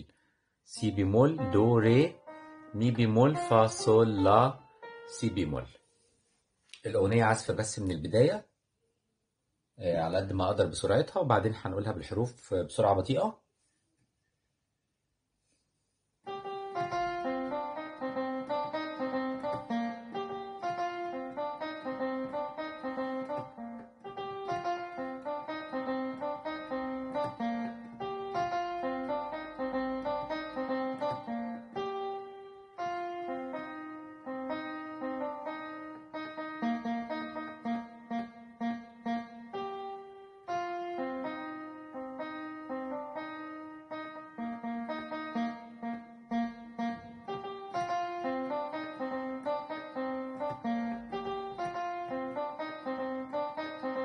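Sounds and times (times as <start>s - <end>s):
electronic keyboard melody: 0.7s - 6.1s, 16.2s - 54.0s.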